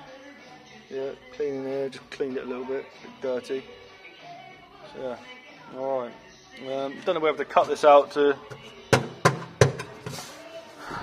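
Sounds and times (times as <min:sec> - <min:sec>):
hand knocking on sheet metal: 0:08.9 - 0:10.2.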